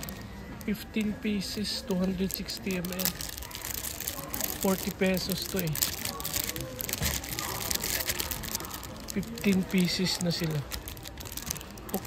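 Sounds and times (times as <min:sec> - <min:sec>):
plastic film crinkling: 0:00.0 - 0:12.0.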